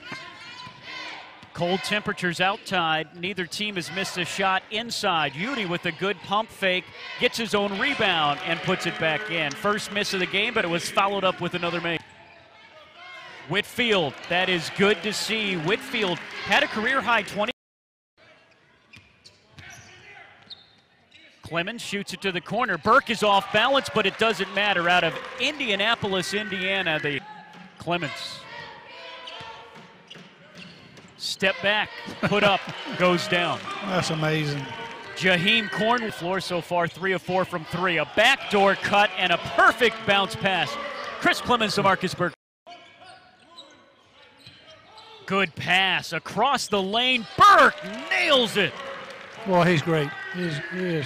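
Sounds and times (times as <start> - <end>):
distant voices of players and crowd: 0.0 - 17.4, 18.2 - 51.0
faint crowd voices: 22.0 - 45.4.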